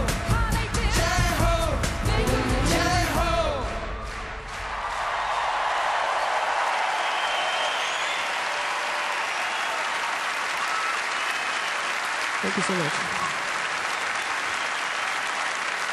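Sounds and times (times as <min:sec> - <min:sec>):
large audience applauding: 0:03.1 - 0:15.9.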